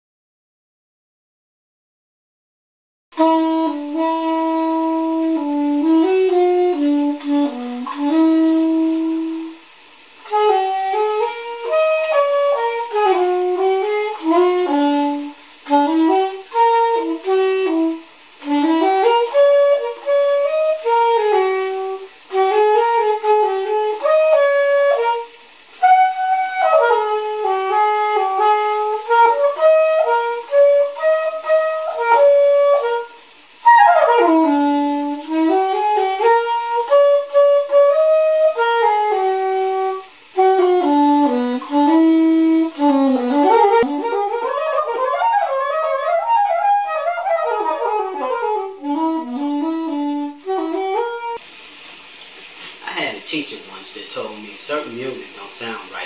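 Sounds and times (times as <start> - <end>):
soprano saxophone melody: 3.2 - 51.5.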